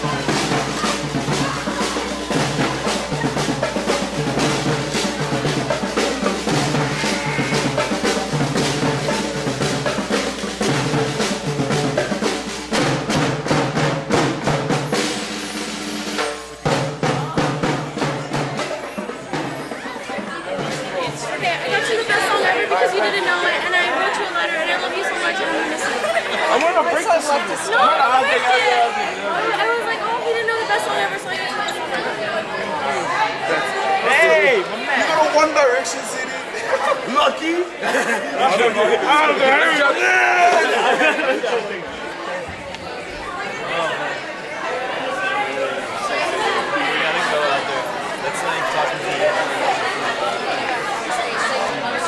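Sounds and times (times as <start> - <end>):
people laughing: 0.0 - 10.6, 18.4 - 30.2, 33.1 - 42.2
young people chattering: 0.0 - 52.0.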